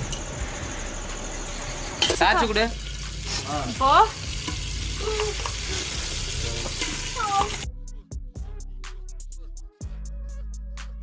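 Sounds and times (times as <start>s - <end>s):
background music with sharp beats: 0.0s - 11.0s
ghee sizzling in a pot: 0.8s - 7.7s.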